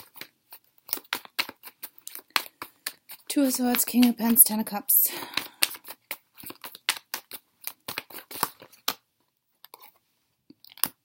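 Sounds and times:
cards shuffling and snapping: 0:00.0 - 0:11.0.

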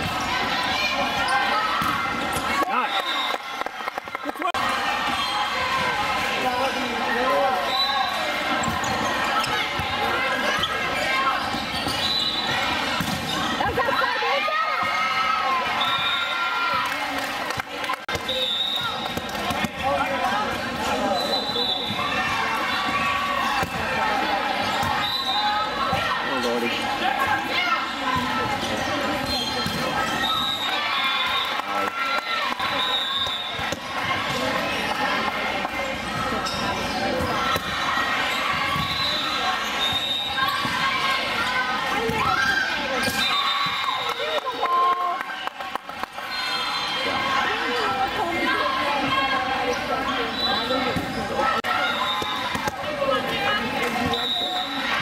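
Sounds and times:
calls and chatter: 0:00.0 - 0:55.0
sneakers squeaking on court floor: 0:07.4 - 0:14.0, 0:27.8 - 0:31.6, 0:35.8 - 0:40.9, 0:49.0 - 0:52.8.

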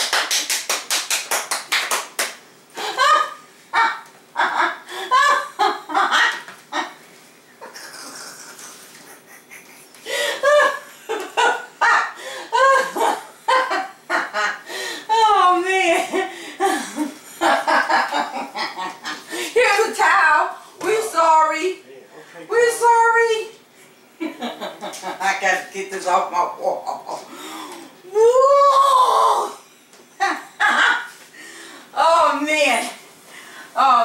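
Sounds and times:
hands clapping rapidly: 0:00.0 - 0:02.4.

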